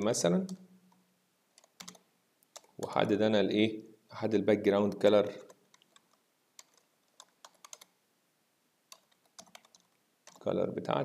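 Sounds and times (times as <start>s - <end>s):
faint keyboard typing: 0.4s - 3.2s, 4.8s - 8.0s, 8.9s - 10.5s.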